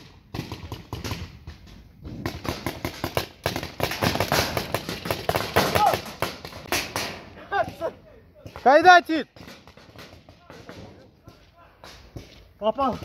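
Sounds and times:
paintball markers firing: 0.0 - 7.2.

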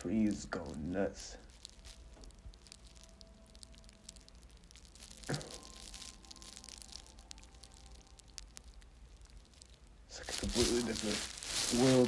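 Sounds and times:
faint ticks and crackles: 0.0 - 12.0
person murmuring: 5.3 - 5.6.

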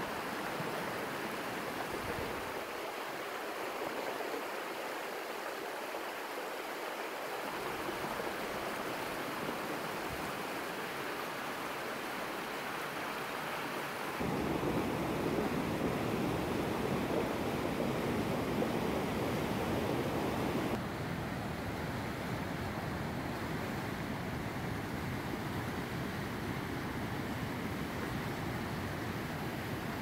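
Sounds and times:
floodwater rushing: 0.0 - 20.8.

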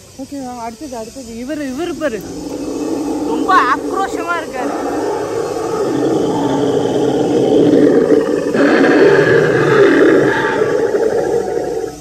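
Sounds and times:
dinosaur roar: 2.2 - 12.0.

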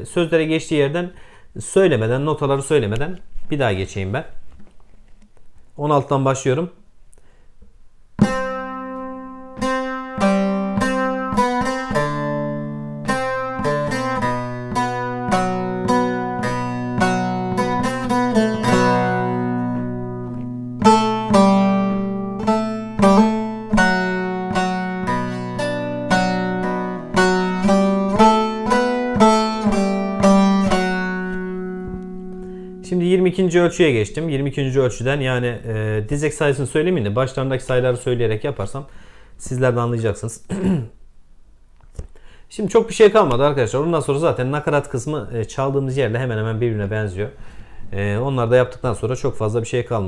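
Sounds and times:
plucked lute melody: 8.2 - 33.6.

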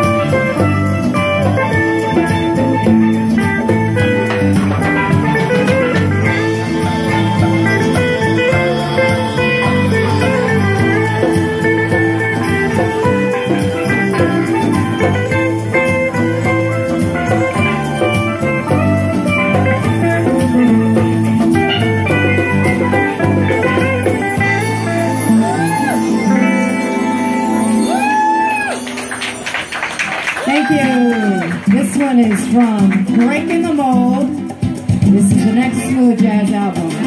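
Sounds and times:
steel pan melody: 0.0 - 31.3
drum kit keeping time: 0.0 - 37.0
people clapping: 4.3 - 6.2, 27.8 - 34.2.

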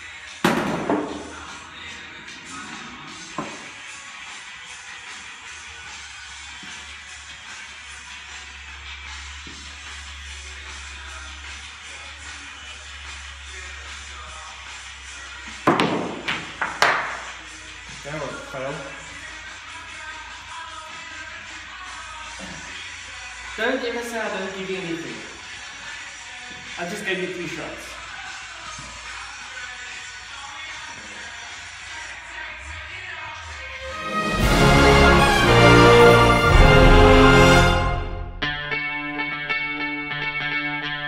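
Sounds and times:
background music: 0.0 - 41.0
pool balls clacking: 0.4 - 1.5, 2.3 - 3.8, 15.6 - 17.4.

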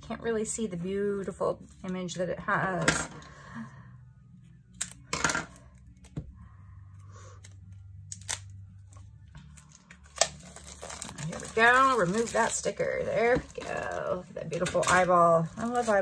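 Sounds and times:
small tearing sounds: 7.4 - 12.7.

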